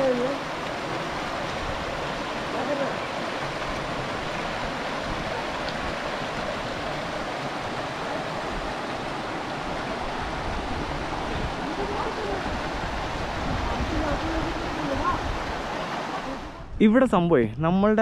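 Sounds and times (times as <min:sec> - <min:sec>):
stream running over stones: 0:00.0 - 0:16.6.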